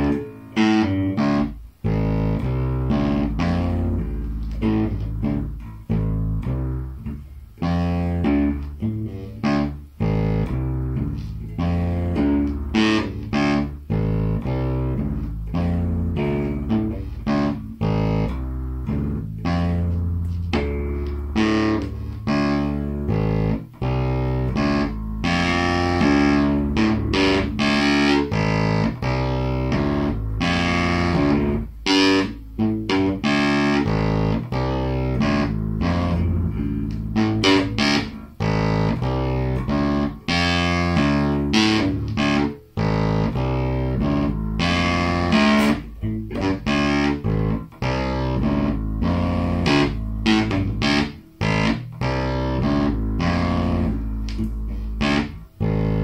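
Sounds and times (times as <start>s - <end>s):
electric bass guitar plucked: 0.0s - 56.0s.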